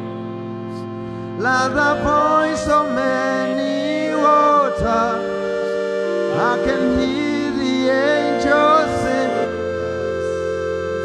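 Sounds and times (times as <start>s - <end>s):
held instrumental chords: 0.0s - 11.0s
person singing: 0.0s - 11.0s.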